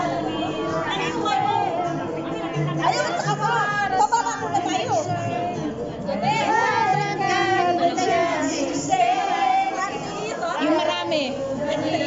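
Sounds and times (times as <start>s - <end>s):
women singing together: 0.0s - 12.0s.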